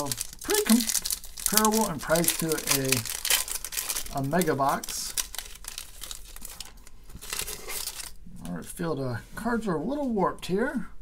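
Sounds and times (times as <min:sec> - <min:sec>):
foil wrapper crinkling: 0:00.0 - 0:08.2.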